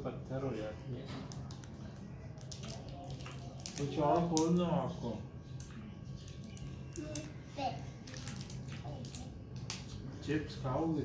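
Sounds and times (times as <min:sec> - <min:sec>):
small child vocal sounds: 0:06.9 - 0:09.4.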